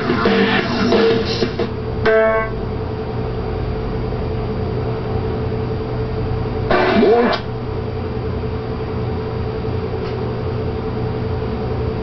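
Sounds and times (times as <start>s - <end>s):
steady low hum: 0.0s - 12.0s
rock guitar riff: 2.0s - 2.6s
single pitched note: 2.0s - 2.6s.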